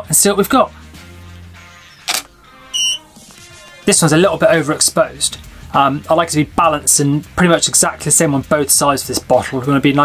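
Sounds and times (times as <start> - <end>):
quiet background music: 0.0 - 10.0
camera shutter click: 2.0 - 2.3
short high electronic beep: 2.8 - 3.0.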